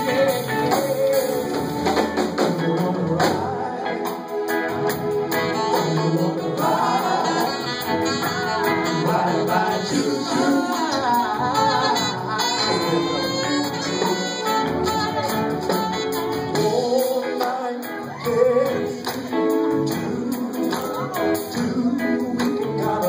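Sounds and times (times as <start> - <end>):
group singing: 0.0 - 15.8, 16.4 - 23.0
drums: 0.0 - 23.0.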